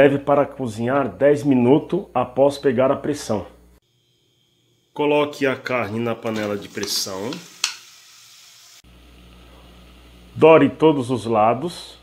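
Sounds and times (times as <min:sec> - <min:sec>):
beef sizzling in a pan: 0:05.6 - 0:10.3.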